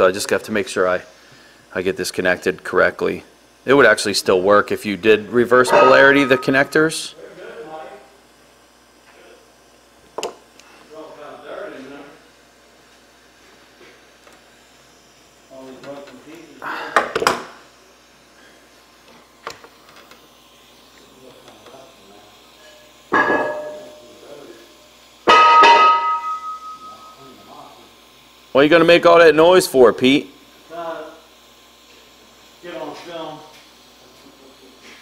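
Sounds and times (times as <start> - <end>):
metallic clangs and bangs: 5.7 - 6.7, 23.2 - 24.0, 25.3 - 27.0.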